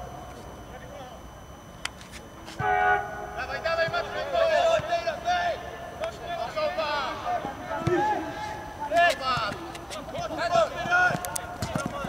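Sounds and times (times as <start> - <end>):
football players shouting: 2.6 - 12.0.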